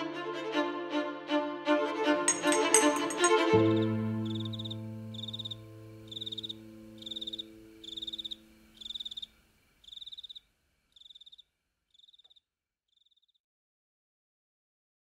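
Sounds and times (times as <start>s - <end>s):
held chord of string music: 0.0s - 8.7s
cricket chirping: 3.8s - 13.4s.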